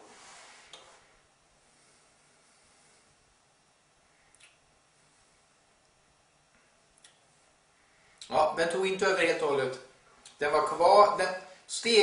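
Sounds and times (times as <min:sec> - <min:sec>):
faint click: 0:04.3 - 0:04.6.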